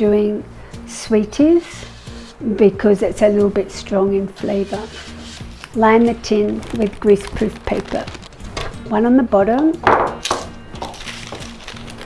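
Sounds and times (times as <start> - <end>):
soft background music: 0.0 - 12.0
paper rustling: 4.5 - 8.9, 10.8 - 12.0.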